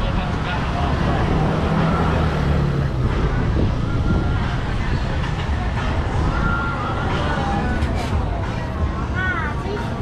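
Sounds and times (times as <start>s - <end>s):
vehicle engine hum: 0.0s - 9.2s
traffic rumble: 0.0s - 10.0s
wind buffeting microphone: 2.9s - 6.7s.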